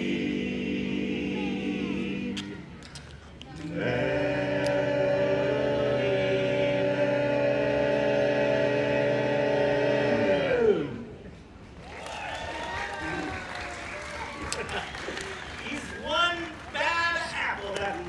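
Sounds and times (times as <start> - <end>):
men singing a cappella chord: 0.0 - 2.6, 3.6 - 11.2.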